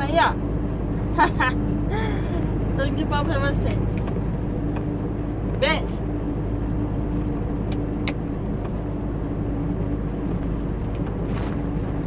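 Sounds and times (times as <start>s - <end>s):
diesel truck engine droning: 0.0s - 12.0s
road noise: 0.0s - 12.0s.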